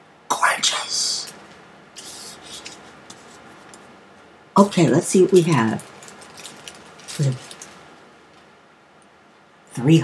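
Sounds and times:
plastic packaging crinkling: 0:05.3 - 0:07.9.

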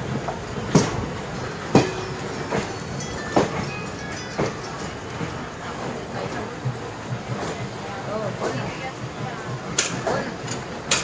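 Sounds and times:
train rumble: 0:00.0 - 0:11.0
train wheels clacking on rail joints: 0:00.0 - 0:11.0.

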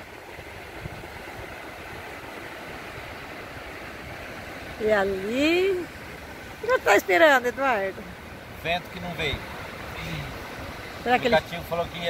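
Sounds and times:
wind buffeting microphone: 0:00.0 - 0:08.6.

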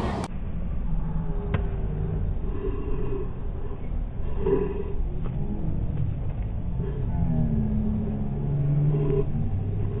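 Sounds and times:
street noise: 0:00.0 - 0:10.0
vehicle engine rumble: 0:00.0 - 0:10.0.

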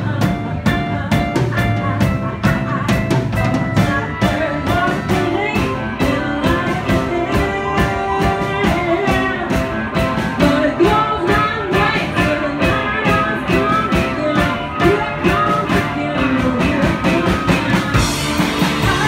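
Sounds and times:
drum kit beat: 0:00.0 - 0:19.0
electric guitar: 0:00.0 - 0:19.0
person singing: 0:00.0 - 0:19.0.

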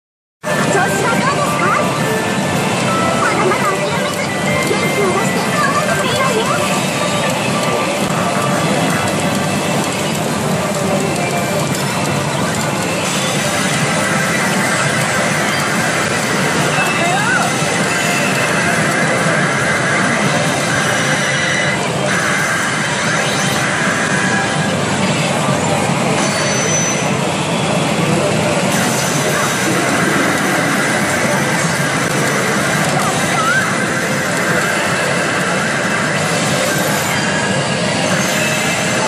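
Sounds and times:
game sound effects: 0:00.4 - 0:39.0
loud steady wall of noise: 0:00.4 - 0:39.0
pachinko machine music: 0:00.4 - 0:39.0.

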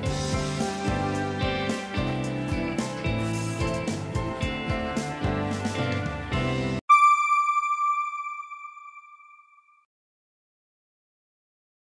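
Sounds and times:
background music: 0:00.0 - 0:09.4
bright electronic chime: 0:06.9 - 0:09.9.

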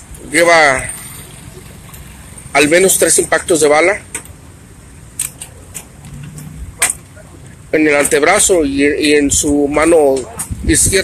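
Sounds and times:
faint street noise: 0:00.0 - 0:11.0.

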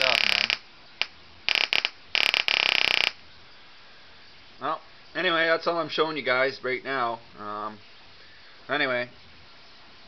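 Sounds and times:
high-voltage sparks crackling: 0:00.0 - 0:03.2.

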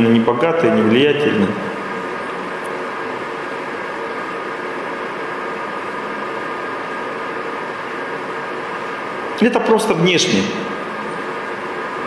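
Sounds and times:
faint hum: 0:00.0 - 0:12.0.

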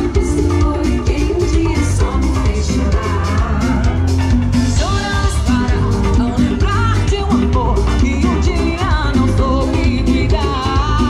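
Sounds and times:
live band playing: 0:00.0 - 0:11.0
woman singing into a microphone: 0:00.0 - 0:11.0.

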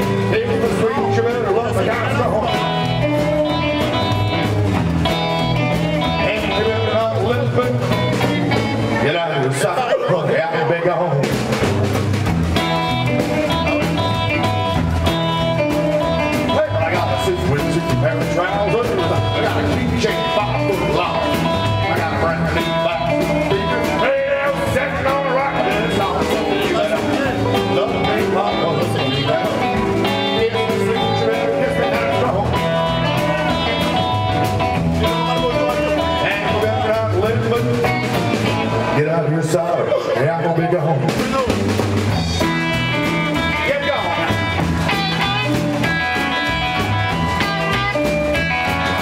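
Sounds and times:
rock and roll band playing: 0:00.0 - 0:49.0.

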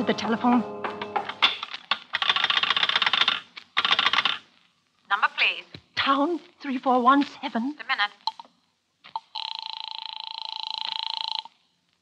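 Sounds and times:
telephone ringing: 0:09.2 - 0:11.6.

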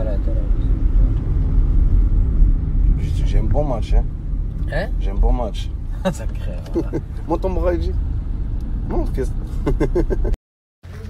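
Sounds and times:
car engine rumble inside cabin: 0:00.0 - 0:11.0.

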